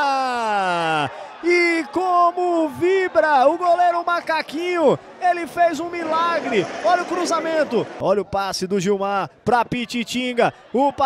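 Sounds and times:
male sports commentator speaking: 0.0 - 11.0.

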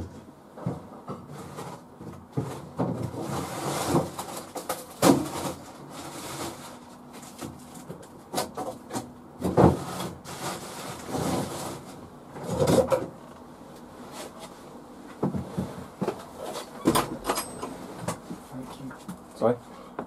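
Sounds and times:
doors and drawers being handled: 15.2 - 18.3.

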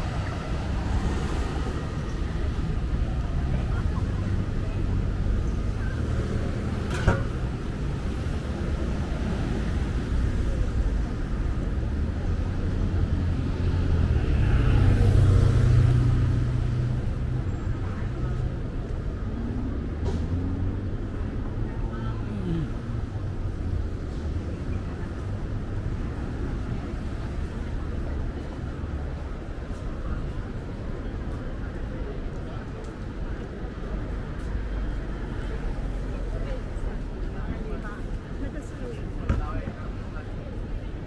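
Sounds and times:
traffic rumble: 0.0 - 41.0.

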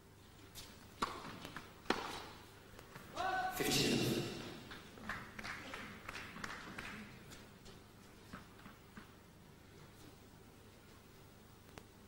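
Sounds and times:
tennis ball struck by racket: 1.0 - 2.4
person shouting: 3.1 - 4.4.

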